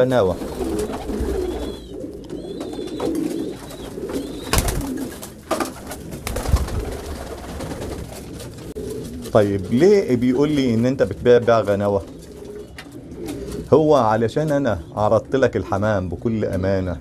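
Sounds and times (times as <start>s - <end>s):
pigeons cooing: 0.0s - 17.0s.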